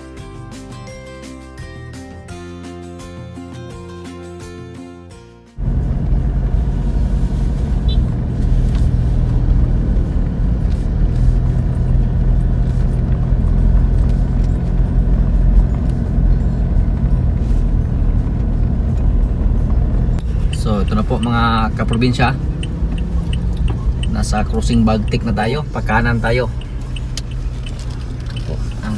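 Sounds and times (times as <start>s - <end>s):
car engine and tyre rumble: 5.6s - 28.9s.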